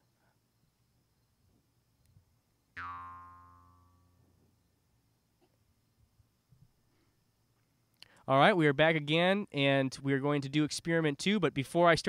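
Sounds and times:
boing-like tone: 2.8 - 4.2.

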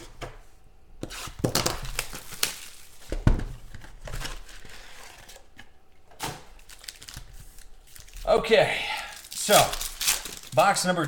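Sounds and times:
plastic wrapping crinkling and tearing: 1.4 - 3.1, 6.4 - 11.0.

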